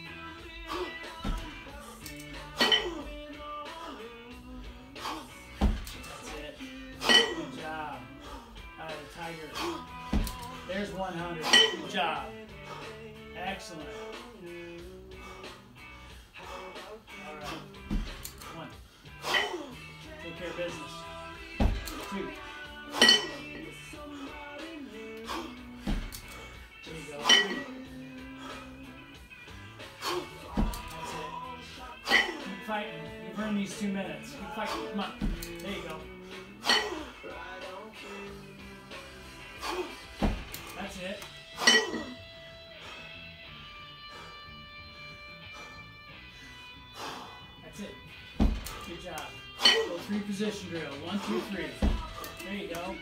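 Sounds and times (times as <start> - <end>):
background music: 0.0 - 53.0
kettlebells clinking together: 2.2 - 3.0, 7.0 - 7.6, 11.4 - 12.0, 19.3 - 19.7, 23.0 - 23.9, 27.1 - 27.8, 32.1 - 32.6, 36.6 - 37.0, 41.6 - 42.2, 49.6 - 50.1
dull low thump: 21.6 - 21.9.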